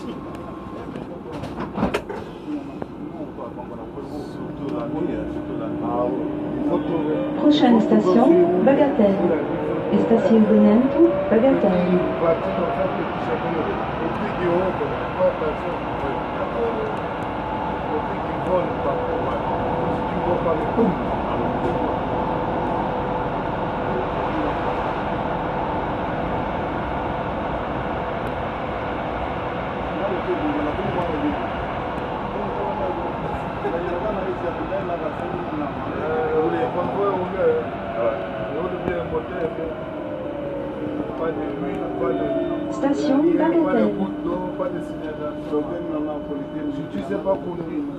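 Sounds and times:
train rolling noise: 0.0s - 47.9s.

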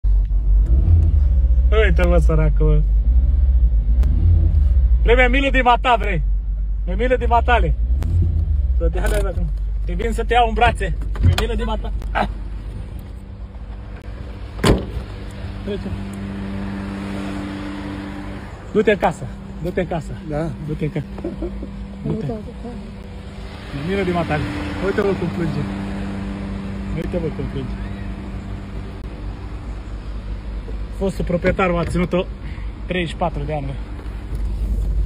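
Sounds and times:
car engine idling: 0.0s - 35.0s.

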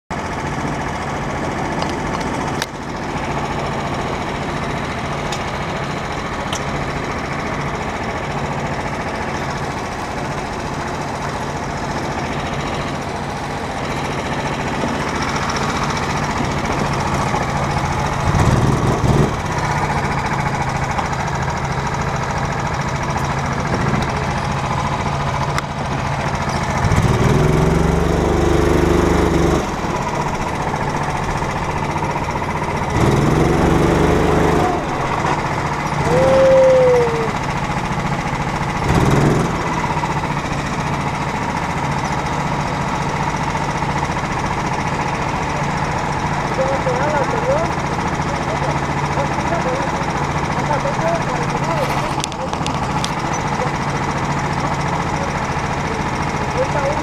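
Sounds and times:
go-kart engine revving: 0.1s - 57.0s.

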